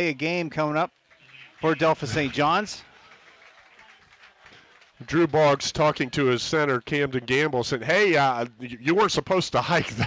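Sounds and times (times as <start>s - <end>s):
stadium crowd background noise: 0.0s - 10.0s.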